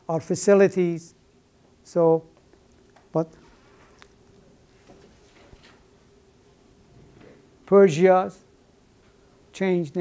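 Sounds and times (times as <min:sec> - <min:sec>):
buzzing hum of room equipment: 0:00.0 - 0:10.0.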